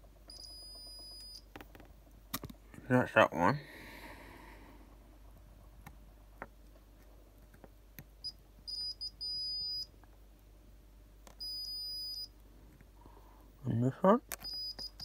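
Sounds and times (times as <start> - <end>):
multimeter continuity beeps: 0.2 - 1.5, 8.2 - 9.9, 11.3 - 12.3, 14.3 - 15.0.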